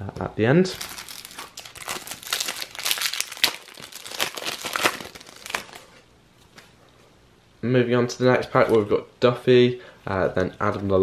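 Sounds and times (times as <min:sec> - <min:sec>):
foil wrapper crinkling and tearing: 0:00.7 - 0:06.0.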